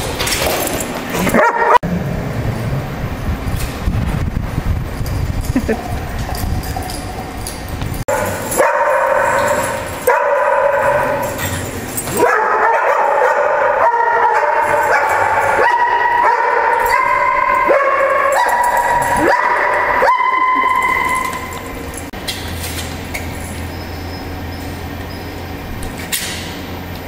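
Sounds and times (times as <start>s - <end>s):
dog whining and yipping: 18.3s - 21.6s.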